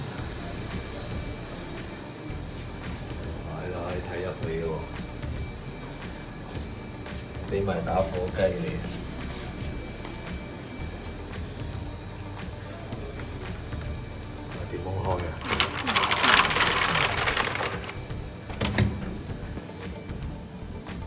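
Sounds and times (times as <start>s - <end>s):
wooden door and latch rattling: 15.4s - 19.3s.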